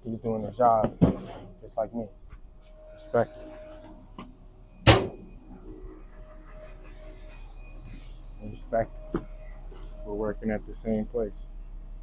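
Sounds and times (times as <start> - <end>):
metal door banging shut: 4.8 - 5.3.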